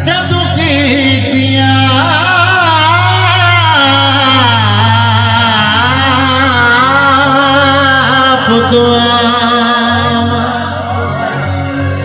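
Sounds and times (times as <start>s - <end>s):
man singing through loudspeaker: 0.0s - 12.0s.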